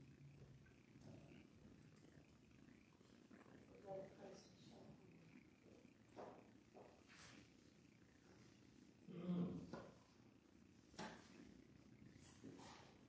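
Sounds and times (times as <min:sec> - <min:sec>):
low murmured voice: 0:09.0 - 0:10.0.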